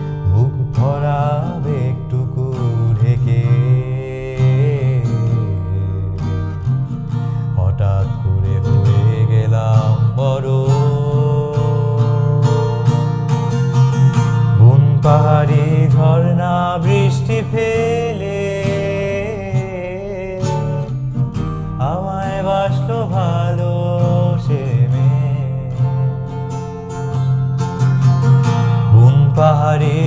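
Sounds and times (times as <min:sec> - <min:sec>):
man singing: 0:00.0 - 0:13.3, 0:14.3 - 0:27.0, 0:28.7 - 0:30.0
acoustic guitar strumming: 0:00.0 - 0:30.0.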